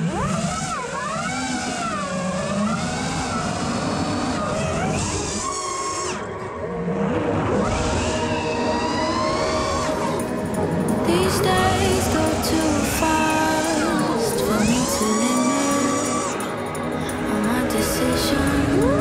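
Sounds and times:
quadcopter motors whining: 0:00.0 - 0:19.0.

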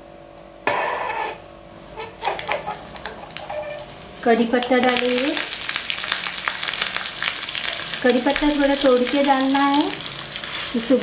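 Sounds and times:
oil and seeds sizzling: 0:00.7 - 0:11.0.

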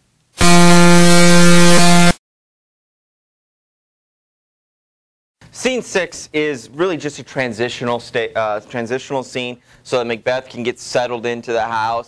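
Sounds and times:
horn-like electronic tone: 0:00.4 - 0:02.2.

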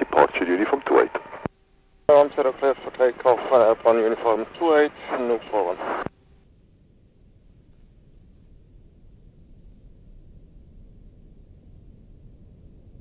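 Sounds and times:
voice over aviation radio: 0:00.0 - 0:01.4, 0:02.1 - 0:06.0
radio click: 0:00.0 - 0:01.6
faint low background noise: 0:00.0 - 0:13.0.

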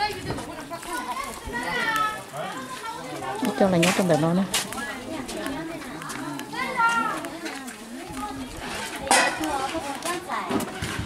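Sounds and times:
children's voices: 0:00.0 - 0:11.0
people talking: 0:00.0 - 0:11.0.

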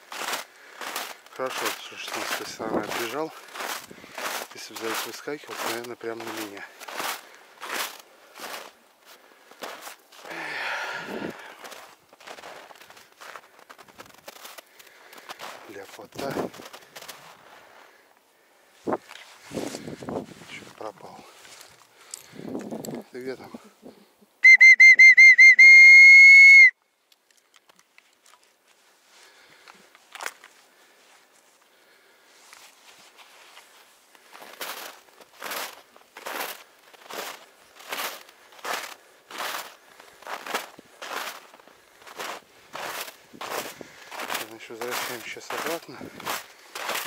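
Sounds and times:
footsteps crunching through snow: 0:00.0 - 0:18.0, 0:18.7 - 0:23.4, 0:28.2 - 0:47.0
shrill whistle blast: 0:24.4 - 0:26.8.

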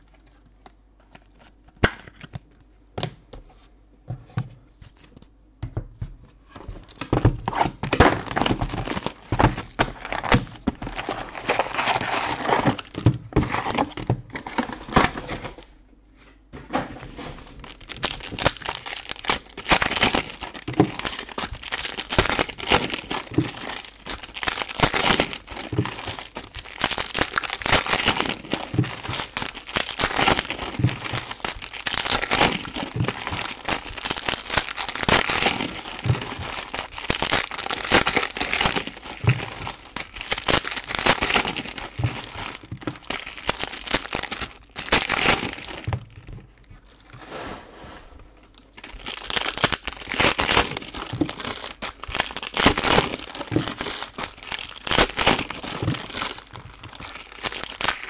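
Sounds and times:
foil wrappers crinkling and tearing: 0:00.0 - 0:02.5, 0:06.6 - 0:15.7, 0:17.0 - 0:47.3, 0:48.4 - 0:58.0.

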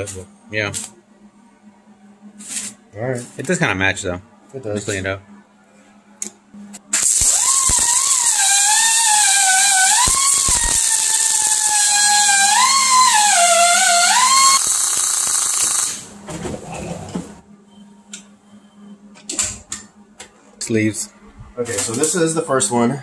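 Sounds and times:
whine rising and falling: 0:06.5 - 0:16.0
welding arc crackling hiss: 0:06.9 - 0:16.1.

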